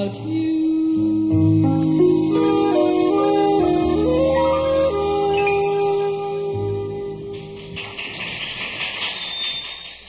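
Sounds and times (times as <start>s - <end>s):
jazz band chord: 0.9s - 7.7s.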